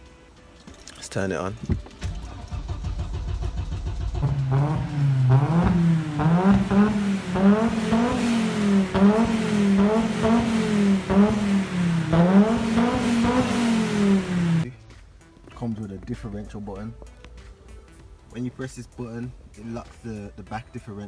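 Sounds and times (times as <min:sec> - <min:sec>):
car engine revving: 0:02.0 - 0:14.7.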